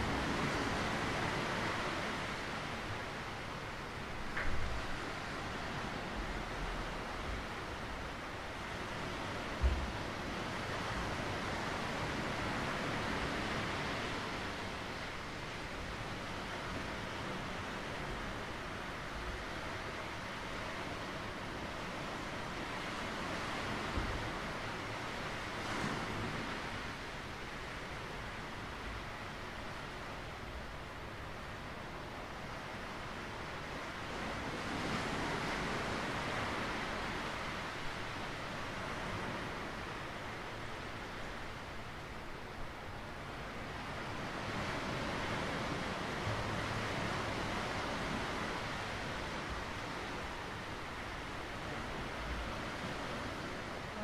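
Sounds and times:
wind thumps on microphone: 9.5s - 10.1s.

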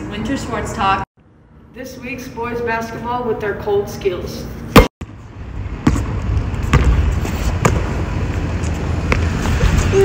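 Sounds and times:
basketball bouncing on concrete: 5.8s - 8.0s.

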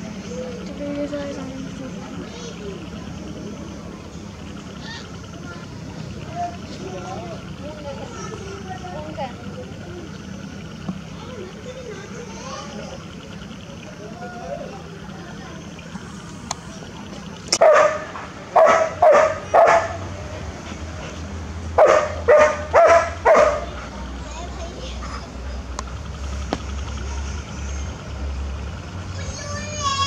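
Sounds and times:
faint distant voices: 0.0s - 30.0s.

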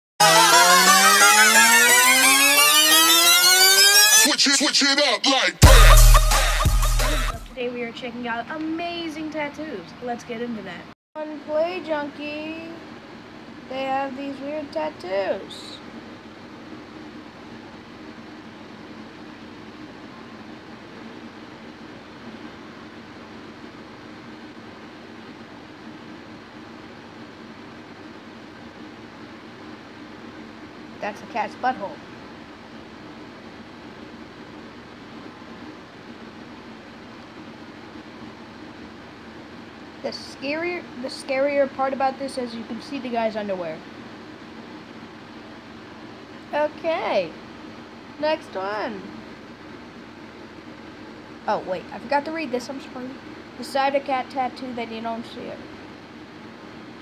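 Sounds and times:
quick warbling notes: 0.2s - 4.3s
rising electronic tone: 0.2s - 4.4s
faint hum: 0.2s - 57.0s.

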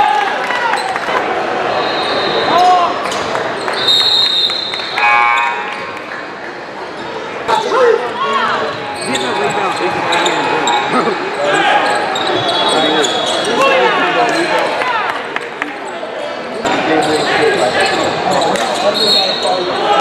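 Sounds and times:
sneakers squeaking: 1.8s - 4.9s, 6.8s - 14.6s, 15.4s - 19.8s.

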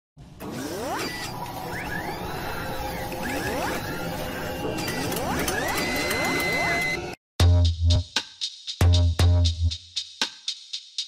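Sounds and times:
mechanical whirring and clicking: 0.4s - 7.2s.

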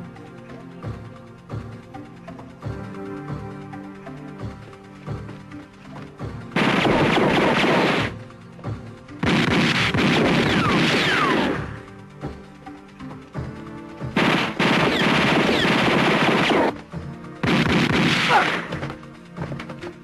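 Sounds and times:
background music: 0.0s - 20.0s
automatic gunfire: 6.6s - 8.2s, 9.2s - 11.8s, 14.2s - 16.8s, 17.4s - 18.8s.

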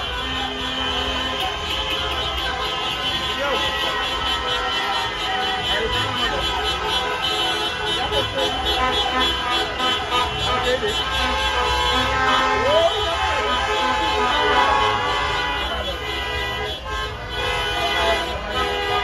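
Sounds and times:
car engines: 0.0s - 19.0s
car horns: 0.0s - 19.0s
crowd shouting: 0.0s - 19.0s.

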